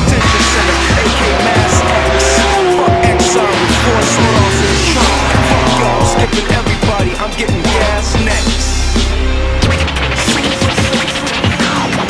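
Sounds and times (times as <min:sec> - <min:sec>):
hip-hop backing track: 0:00.0 - 0:12.0.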